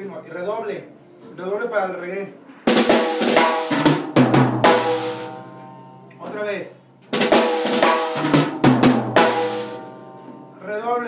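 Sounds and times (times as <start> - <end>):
snare and tom hits: 2.7 - 5.4, 7.1 - 10.4.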